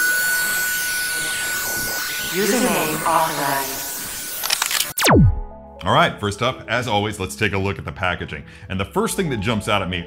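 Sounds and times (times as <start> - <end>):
high electronic whine: 0.0 - 5.5
glitchy digital crackle: 0.5 - 5.4.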